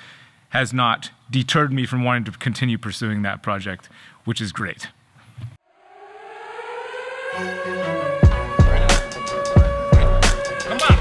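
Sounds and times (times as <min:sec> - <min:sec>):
siren-like rising tone: 0:05.6 - 0:11.0.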